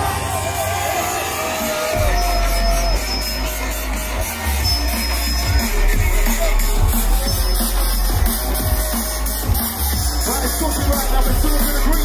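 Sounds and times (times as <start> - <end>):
crowd noise: 0.0 - 12.0
loud music with heavy bass: 0.0 - 12.0.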